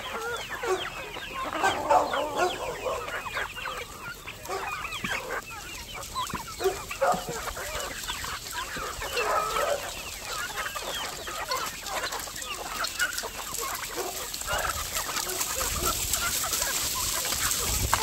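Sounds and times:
chickens clucking: 0.0 - 18.0.

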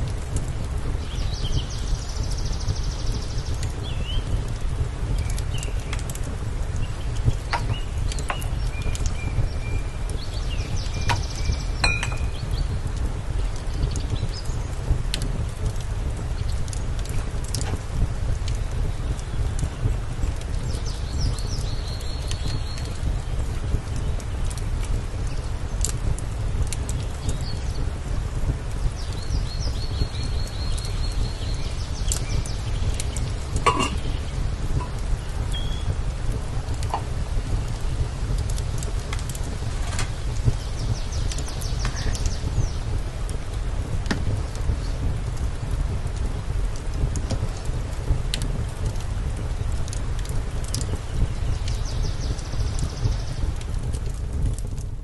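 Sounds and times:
wood fire crackling and popping: 0.0 - 55.0.

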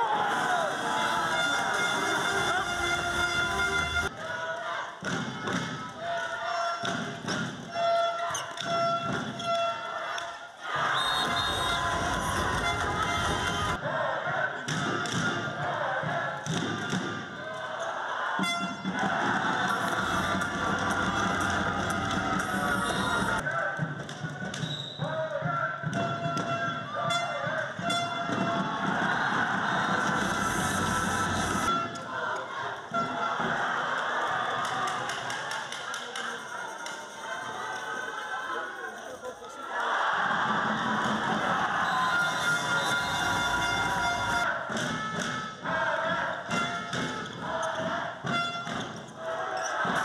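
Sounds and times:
crowd noise: 0.0 - 50.0
music: 0.1 - 4.3, 10.7 - 36.2, 40.3 - 50.0.

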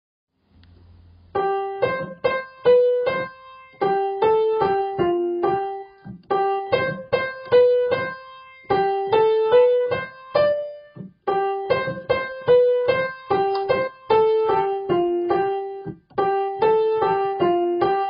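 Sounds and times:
piano playing repeated chords: 1.0 - 18.0.

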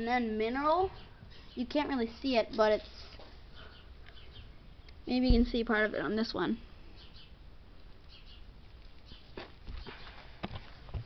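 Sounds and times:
quiet barn background: 0.0 - 11.0.

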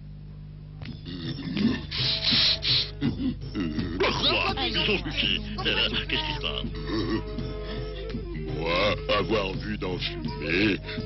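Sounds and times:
low grunting vocal sounds: 1.0 - 2.2, 2.9 - 4.5, 6.5 - 7.6
rasping sawing noise: 1.8 - 3.0.

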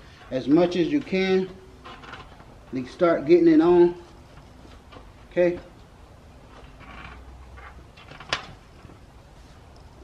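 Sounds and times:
tire handling sounds: 0.0 - 10.0.

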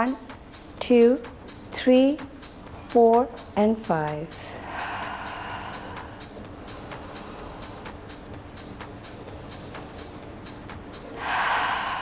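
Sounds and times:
woman breathing out forcefully: 4.4 - 7.9, 11.2 - 12.0.

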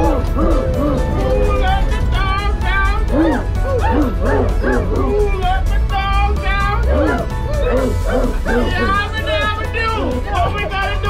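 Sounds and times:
dog-like yelps: 0.0 - 1.7, 3.1 - 5.3, 6.8 - 8.9
background music: 0.0 - 11.0.

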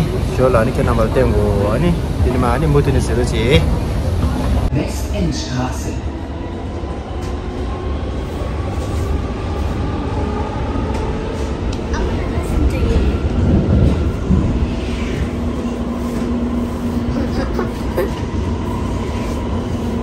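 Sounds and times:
subway train rumble: 0.0 - 20.0.

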